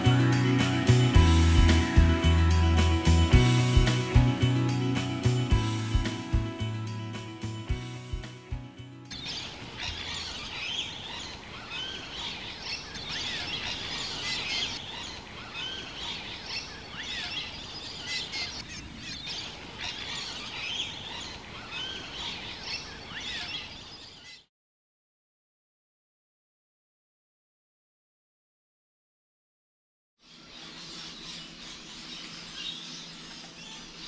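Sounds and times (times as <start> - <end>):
background music: 0.0 - 9.7
birds chirping and calling: 9.1 - 24.5, 30.2 - 34.0.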